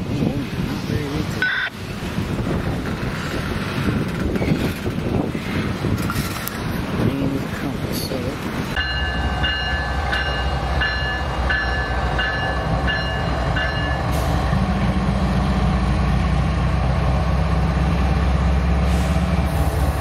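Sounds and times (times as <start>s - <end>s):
diesel locomotive drone: 0.0s - 20.0s
freight train rumbling past: 0.0s - 20.0s
crossing bell ringing: 8.7s - 14.3s.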